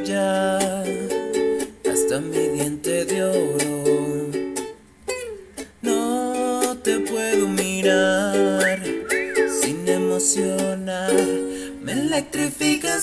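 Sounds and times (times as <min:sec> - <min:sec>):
person singing: 0:00.0 - 0:13.0
ukulele playing chords: 0:00.0 - 0:13.0.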